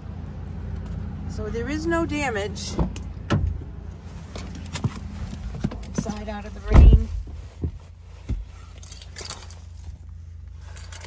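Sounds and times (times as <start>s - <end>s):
car cabin low rumble: 0.0s - 11.0s.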